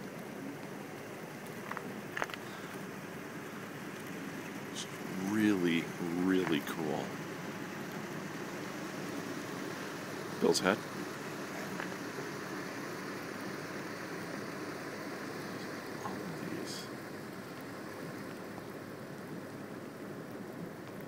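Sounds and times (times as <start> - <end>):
tyres hissing on wet pavement: 0.0 - 21.0.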